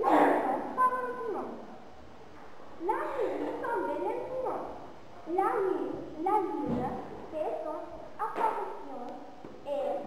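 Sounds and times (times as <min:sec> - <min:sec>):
girl reading aloud: 0:00.0 - 0:01.8, 0:02.8 - 0:10.0.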